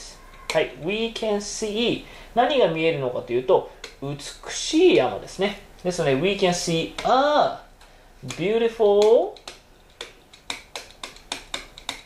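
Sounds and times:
pen tapping on a board: 9.0 - 12.0.

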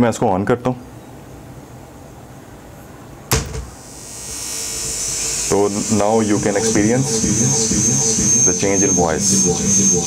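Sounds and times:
amplifier hiss and buzz: 1.4 - 10.0
sharp speaker pop: 3.3 - 3.8.

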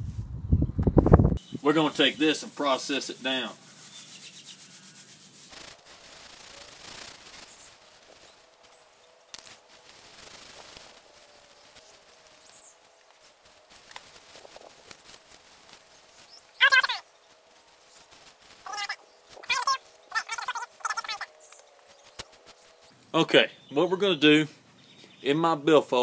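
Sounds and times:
dry grass crackling and rustling: 1.4 - 23.0.

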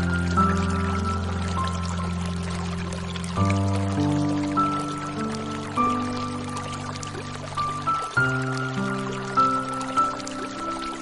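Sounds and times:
running water: 0.0 - 11.0
slow soft piano music: 0.0 - 11.0.

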